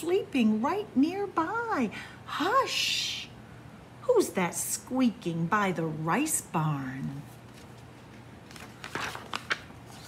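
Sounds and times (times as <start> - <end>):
book page turning: 7.2 - 10.0.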